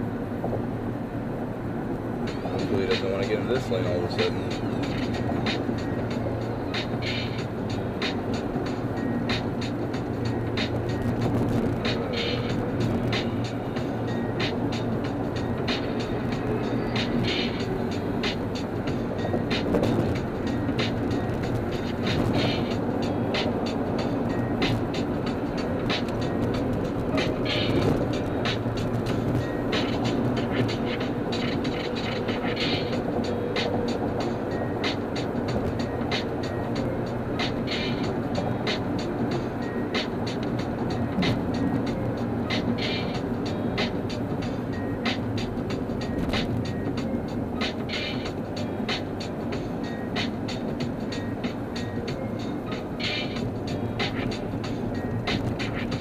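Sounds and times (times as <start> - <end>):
car road and engine noise: 0.0 - 56.0
music playing: 1.6 - 56.0.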